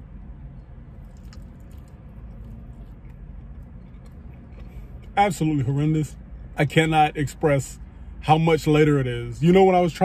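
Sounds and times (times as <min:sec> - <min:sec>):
faint chewing: 0:00.6 - 0:05.2.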